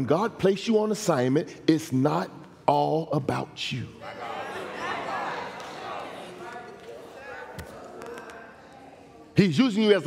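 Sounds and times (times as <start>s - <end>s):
faint voices in large hall: 0.0s - 10.0s.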